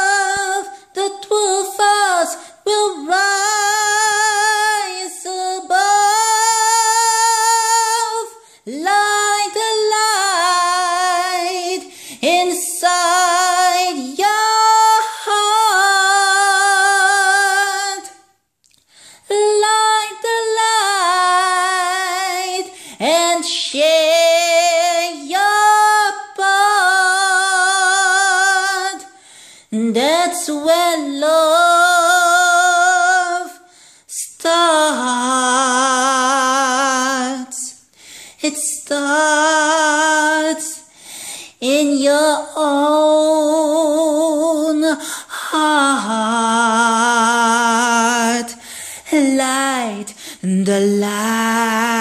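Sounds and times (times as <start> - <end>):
person singing a cappella: 0.0 - 52.0
breaths between phrases: 11.8 - 12.2, 29.1 - 29.8, 33.6 - 34.1, 37.8 - 38.4, 40.8 - 41.6, 45.0 - 45.4, 48.6 - 49.1, 50.1 - 50.4.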